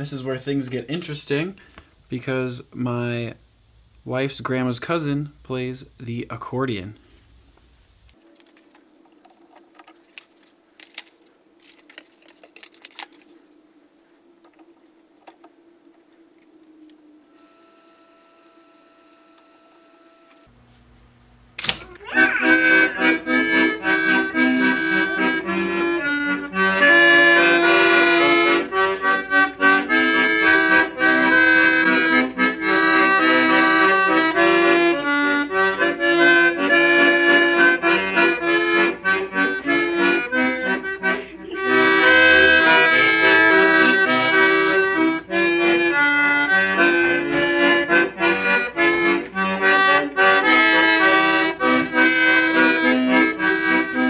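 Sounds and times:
accordion music: 17.2s - 20.5s, 22.0s - 54.0s.

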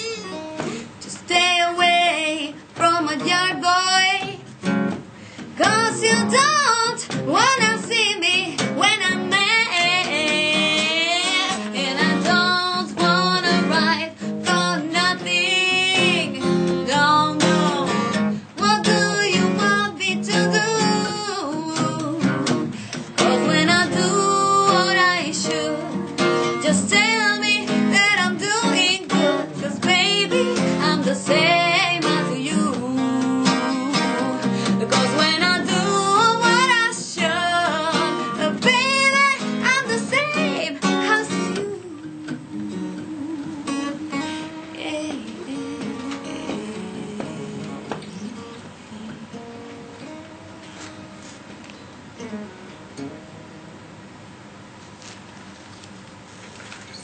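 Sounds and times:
woman singing blues: 0.0s - 51.4s
acoustic guitar strummed: 0.0s - 54.5s.

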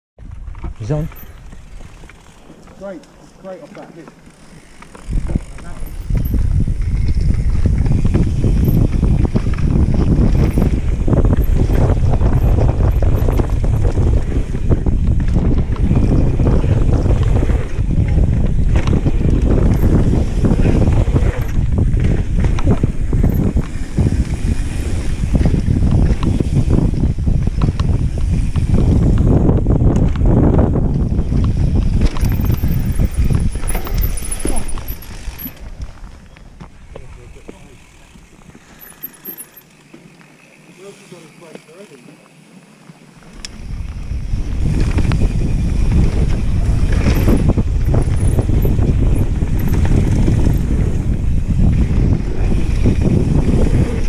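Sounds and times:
bike knocks and rattles: 0.2s - 40.2s, 42.9s - 54.0s
tyres rumbling on dirt: 0.2s - 54.0s
wind buffeting microphone: 4.6s - 39.4s, 43.1s - 54.0s.

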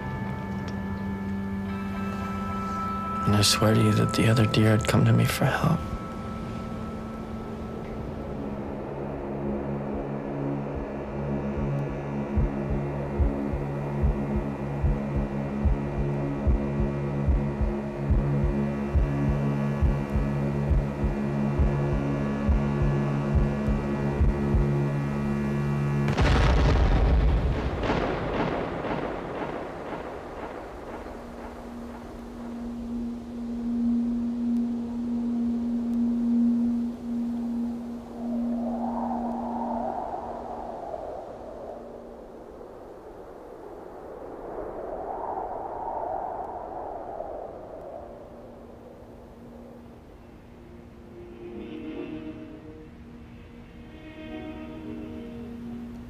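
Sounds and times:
soft higher tones: 0.0s - 24.1s, 31.8s - 56.0s
droning hum with low pulses: 0.0s - 56.0s
held tone: 1.6s - 8.8s.

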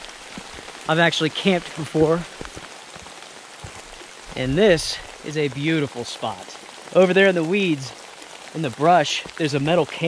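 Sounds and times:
steady rain: 0.0s - 10.0s.

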